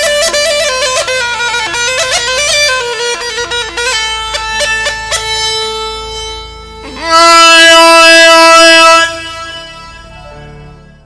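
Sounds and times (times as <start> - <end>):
reedy horn held note: 6.8 - 10.4.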